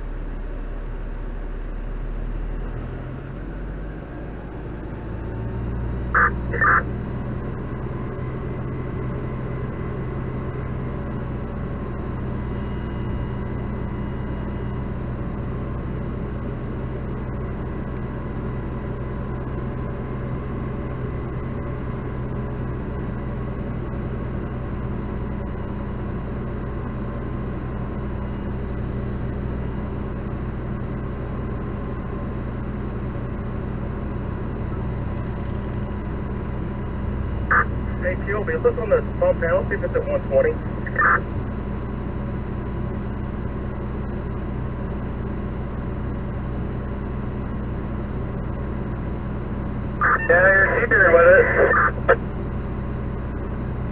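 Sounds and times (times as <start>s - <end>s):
fire engine humming: 0.0s - 53.9s.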